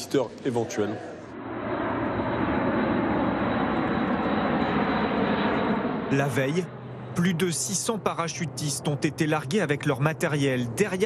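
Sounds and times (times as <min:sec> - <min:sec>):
turboprop aircraft flying over: 0:00.0 - 0:11.0.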